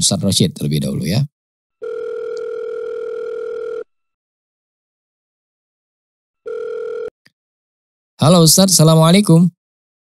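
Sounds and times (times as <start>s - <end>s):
telephone ringback tone: 1.8s - 4.1s, 6.4s - 7.2s.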